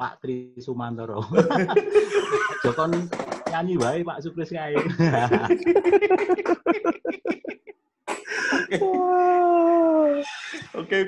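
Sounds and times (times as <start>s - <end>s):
breathy burst: 8.2s - 8.8s.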